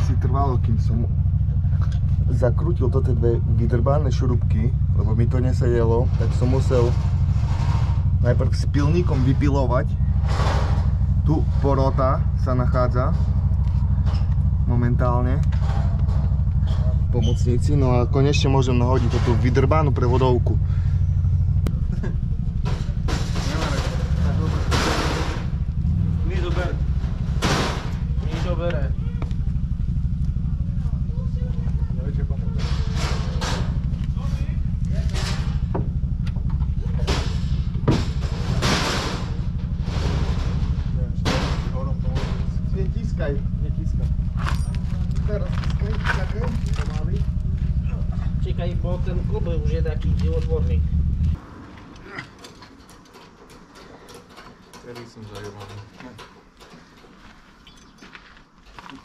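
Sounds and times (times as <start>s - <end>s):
low rumble: 0.0s - 52.0s
metal parts clanking and scraping: 5.9s - 21.6s, 22.4s - 25.7s, 32.4s - 43.0s, 44.4s - 47.4s, 51.8s - 59.0s
muffled voices: 22.7s - 25.4s, 30.4s - 35.8s.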